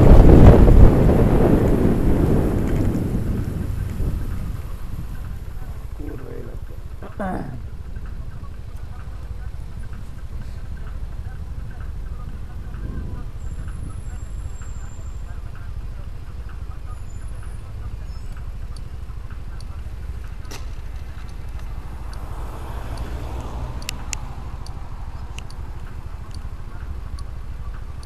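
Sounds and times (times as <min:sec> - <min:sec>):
wind on microphone: 0:00.0 - 0:06.2, 0:11.7 - 0:14.2
motorbike engine rumble: 0:00.0 - 0:28.0
sharp clicks: 0:18.3 - 0:28.0.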